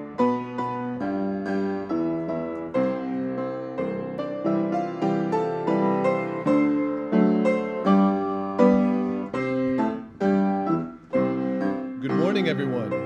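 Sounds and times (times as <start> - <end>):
piano playing slow chords: 0.0 - 13.0.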